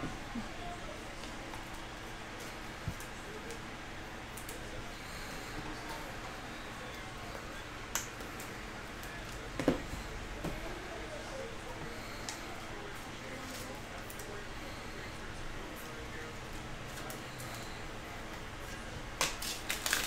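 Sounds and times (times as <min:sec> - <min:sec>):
room hum: 0:00.0 - 0:20.0.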